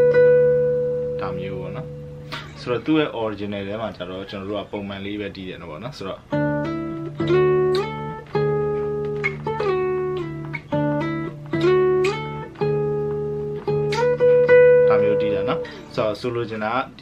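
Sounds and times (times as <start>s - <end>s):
fingerstyle acoustic guitar melody: 0.0s - 3.1s, 6.2s - 16.4s.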